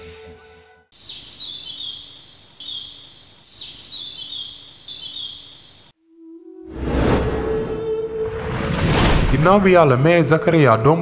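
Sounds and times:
birdsong with trilled notes: 0:01.0 - 0:05.9
outdoor hiss: 0:01.0 - 0:06.1.

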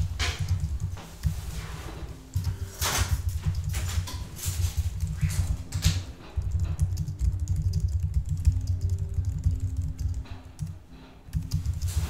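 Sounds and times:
typing on a computer keyboard: 0:00.0 - 0:01.6, 0:02.2 - 0:12.0.

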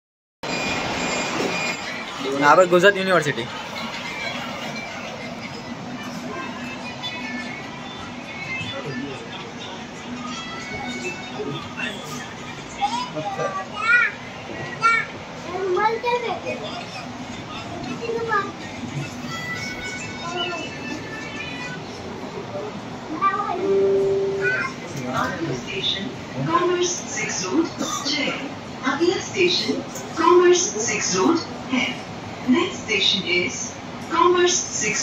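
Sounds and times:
train carriage rail noise: 0:00.5 - 0:02.2
background chatter: 0:01.3 - 0:35.0
faint high-pitched tone: 0:23.4 - 0:24.9.

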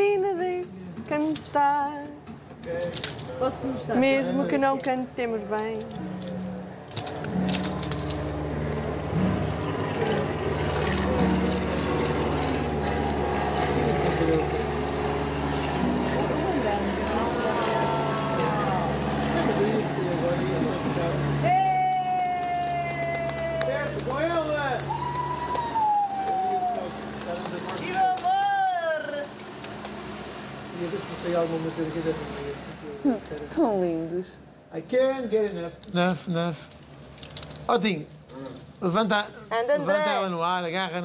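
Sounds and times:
plane engine drone overhead: 0:00.0 - 0:41.0
voices chattering: 0:09.6 - 0:21.4.

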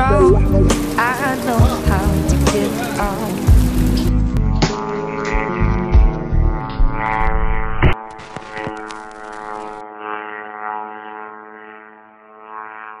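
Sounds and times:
propeller drone buzzing: 0:00.0 - 0:13.0.

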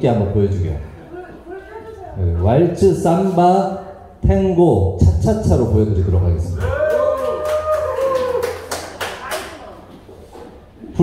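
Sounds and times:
scattered hand claps: 0:06.6 - 0:09.6.

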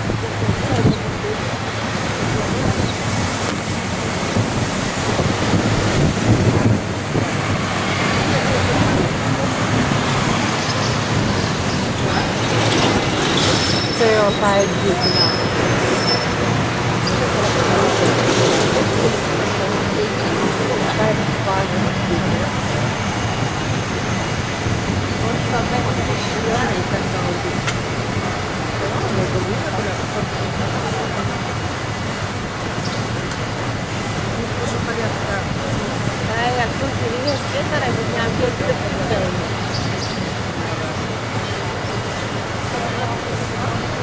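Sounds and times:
passengers chattering: 0:00.0 - 0:44.0
street traffic: 0:00.0 - 0:44.0
wind: 0:00.0 - 0:44.0.

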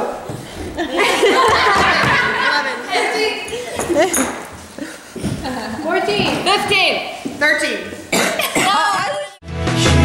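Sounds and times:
woman laughing: 0:08.4 - 0:09.4.

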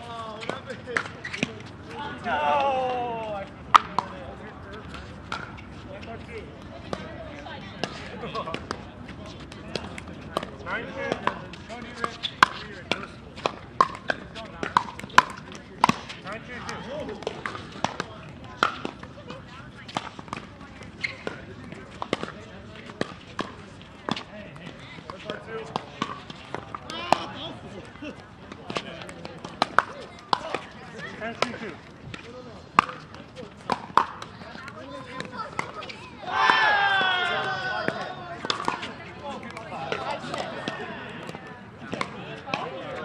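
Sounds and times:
indistinct voices of players: 0:00.0 - 0:05.1, 0:24.4 - 0:43.0
paddles striking plastic balls: 0:09.7 - 0:19.1, 0:28.5 - 0:30.7, 0:31.4 - 0:37.0, 0:37.9 - 0:42.8.

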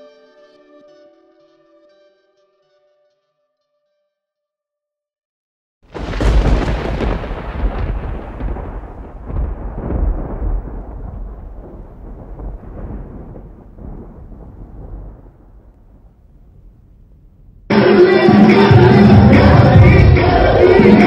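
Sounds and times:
thunder rumbling: 0:05.9 - 0:21.0.

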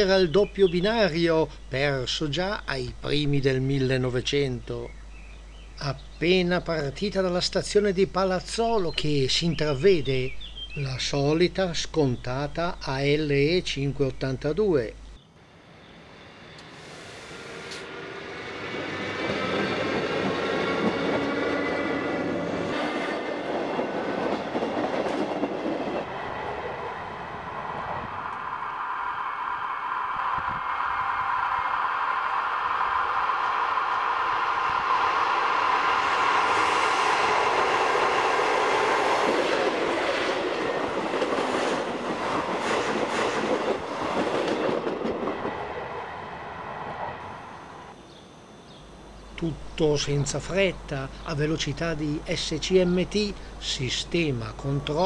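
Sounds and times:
electric train whine: 0:14.9 - 0:55.0.

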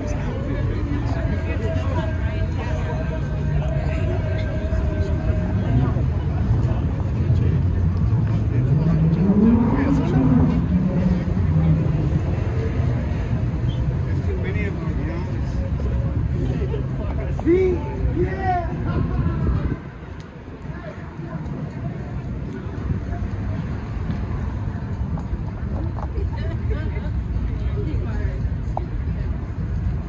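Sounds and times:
distant voices: 0:00.0 - 0:30.0
traffic rumble: 0:00.0 - 0:30.0.

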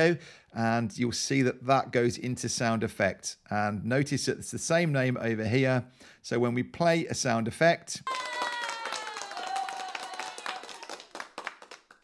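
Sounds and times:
long whoop falling in pitch: 0:08.1 - 0:10.8
crowd clapping: 0:08.1 - 0:12.0.

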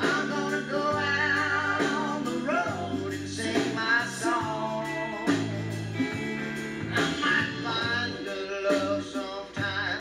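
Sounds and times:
electric guitar lead with bent notes: 0:00.0 - 0:10.0
live country-rock band playing: 0:00.0 - 0:10.0
steady electric bass: 0:00.0 - 0:10.0.

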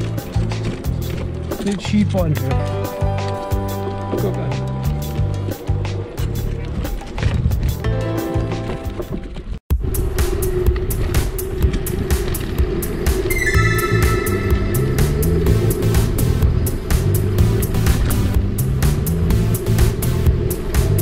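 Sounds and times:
background music with bass line: 0:00.0 - 0:09.1, 0:09.7 - 0:21.0.

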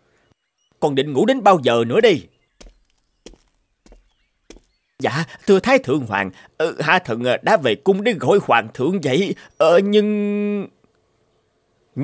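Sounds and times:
soft footsteps: 0:02.5 - 0:05.8.

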